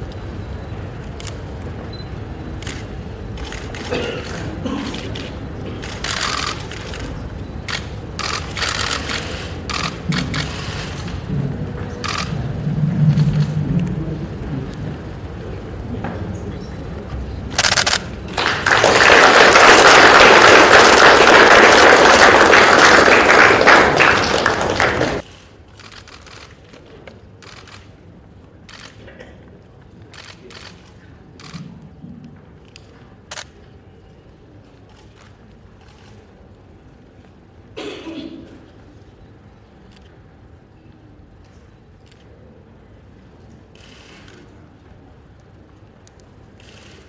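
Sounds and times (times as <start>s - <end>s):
camera shutters clicking: 2.6s - 11.2s, 12.0s - 12.3s, 17.5s - 18.2s, 25.2s - 26.8s, 27.4s - 27.9s, 28.7s - 29.0s, 30.1s - 31.7s, 43.8s - 44.4s, 46.6s - 47.0s
applause: 17.6s - 25.4s.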